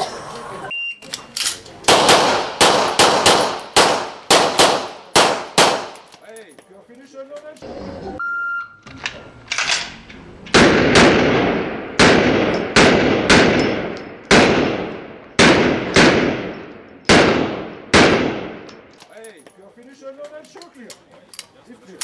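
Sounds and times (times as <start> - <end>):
pistol shots echoing: 1.9 - 6.1, 10.5 - 18.9
shot timer beep: 8.2 - 8.8.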